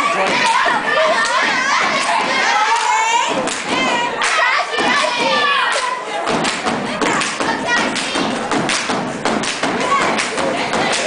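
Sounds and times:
hands clapping: 0:01.2 - 0:11.0.

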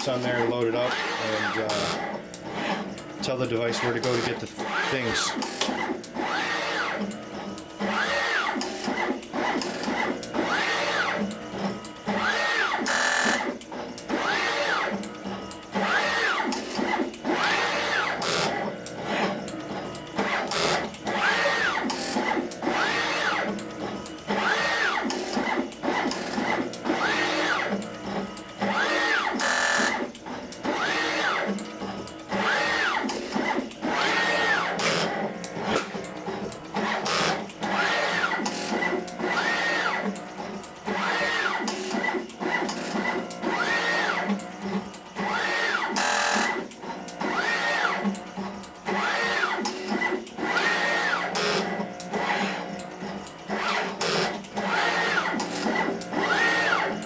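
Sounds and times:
gantry motors whining: 0:00.0 - 0:57.0
rapid machine clicks: 0:00.0 - 0:57.0.

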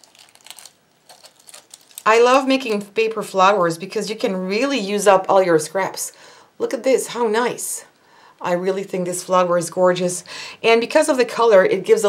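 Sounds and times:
paper petals crinkling: 0:00.0 - 0:02.8.

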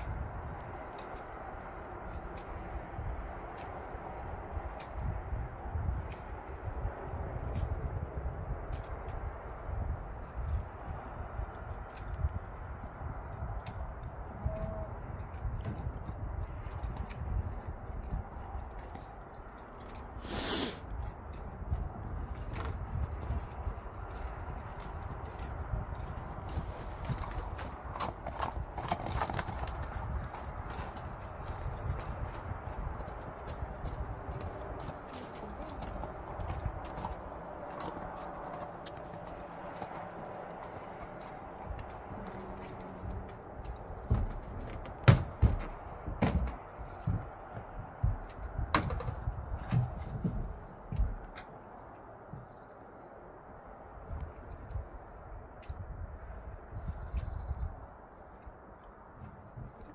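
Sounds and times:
hooves on packed snow: 0:00.0 - 0:59.9
hooves knocking on ramp: 0:10.4 - 0:20.0, 0:21.0 - 0:52.6.

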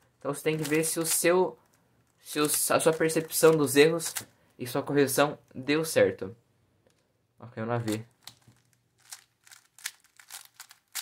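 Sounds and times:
puzzle cube clicking: 0:07.9 - 0:11.0.

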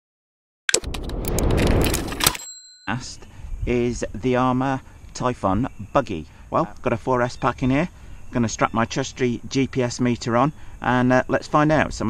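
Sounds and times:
mechanical rumble with rapid clicks: 0:00.8 - 0:02.3.

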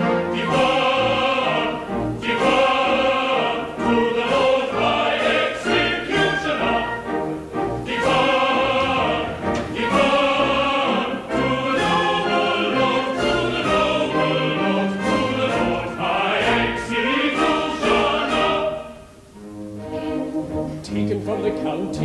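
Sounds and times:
men's chorus singing: 0:00.0 - 0:07.2, 0:07.8 - 0:19.0
theatre orchestra playing: 0:00.0 - 0:22.0.

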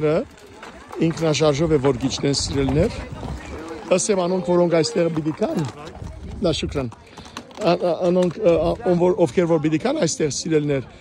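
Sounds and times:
hooves clopping on gravel: 0:00.0 - 0:10.2.

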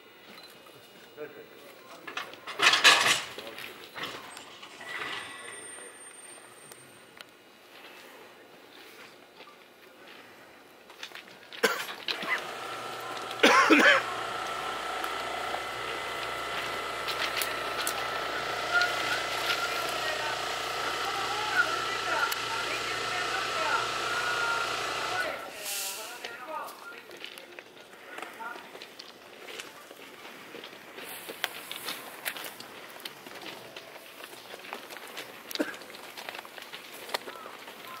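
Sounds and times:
electric train whine and hum: 0:12.1 - 0:25.6
people talking: 0:12.1 - 0:27.6.

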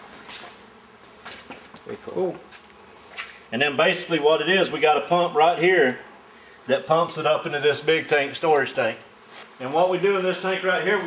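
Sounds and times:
bee buzzing: 0:00.0 - 0:11.0.

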